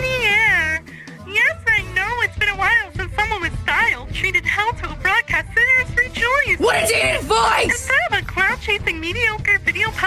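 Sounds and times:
music: 0.0s - 10.0s
high wavering voice singing: 6.6s - 7.9s.

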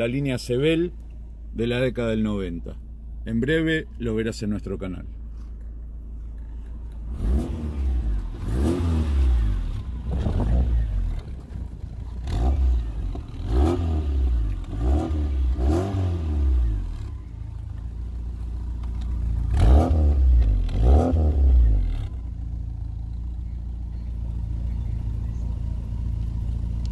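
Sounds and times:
car engine revving and idling: 0.0s - 26.9s.

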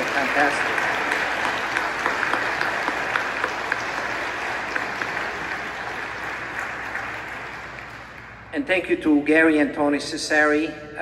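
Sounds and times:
congregation applauding: 0.0s - 8.5s.

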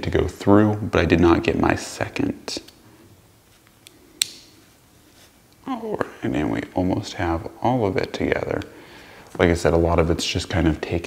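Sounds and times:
sharp metallic click: 3.8s - 4.5s.

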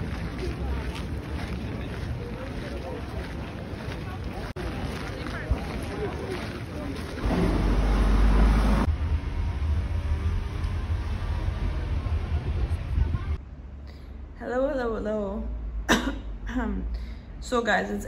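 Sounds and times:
people talking: 0.0s - 7.4s, 11.7s - 13.4s, 14.4s - 18.0s
steady low rumble: 7.0s - 14.4s.

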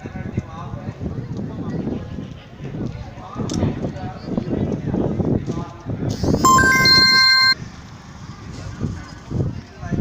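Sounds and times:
electronic chime: 6.5s - 7.6s.

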